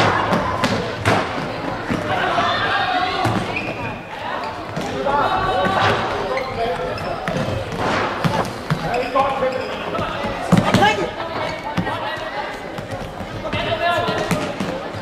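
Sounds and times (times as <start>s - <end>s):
players and spectators shouting: 1.6s - 7.6s.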